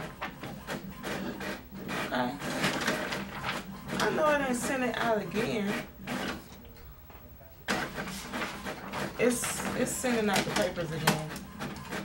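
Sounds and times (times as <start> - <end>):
printer running: 0.0 - 12.0.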